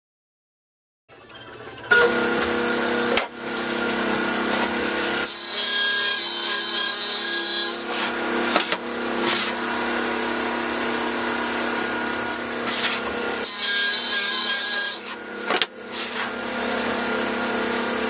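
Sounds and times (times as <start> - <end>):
table saw ripping boards: 1.7 - 18.0.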